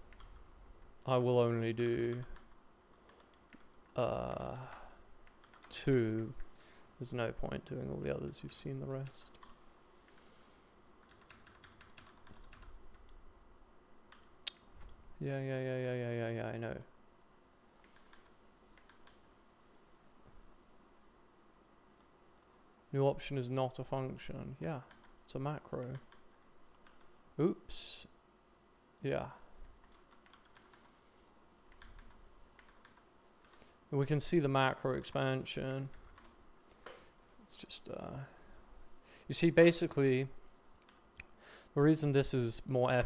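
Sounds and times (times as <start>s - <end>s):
faint keyboard typing: 0.0s - 1.1s, 1.8s - 6.6s, 7.6s - 10.3s, 11.0s - 13.3s, 14.1s - 15.0s, 17.2s - 20.4s, 21.8s - 22.7s, 24.7s - 27.2s, 29.5s - 33.8s, 35.6s - 37.4s, 40.7s - 41.4s
computer keyboard keystrokes: 4.7s - 6.3s, 11.0s - 13.2s, 17.2s - 19.2s, 29.8s - 30.9s, 31.6s - 33.6s.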